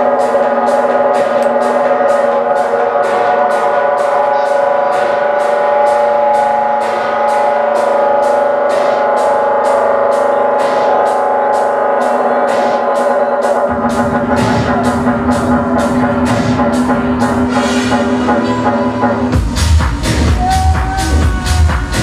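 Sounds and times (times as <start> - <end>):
techno dj set over club speakers: 0.0 - 22.0.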